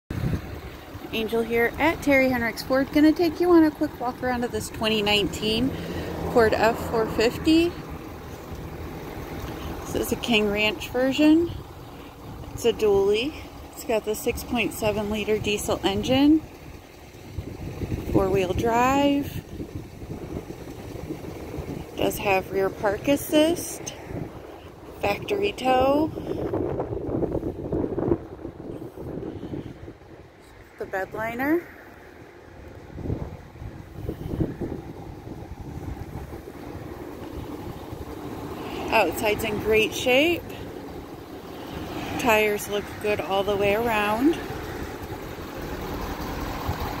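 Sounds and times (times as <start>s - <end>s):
faint outdoor background noise: 0.1s - 47.0s
vehicle engine idling: 0.1s - 47.0s
wind rumbling on microphone: 0.1s - 47.0s.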